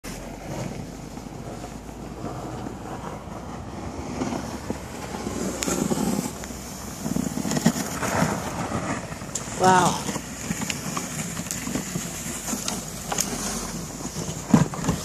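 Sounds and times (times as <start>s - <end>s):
plow crunching and scraping snow: 0.0s - 15.0s
car engine running at low speed: 0.1s - 15.0s.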